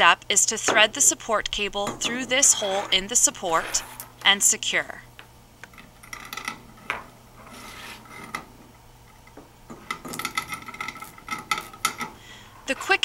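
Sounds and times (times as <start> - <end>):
wire scraping against metal: 1.6 - 4.3, 5.8 - 8.5, 9.1 - 13.0.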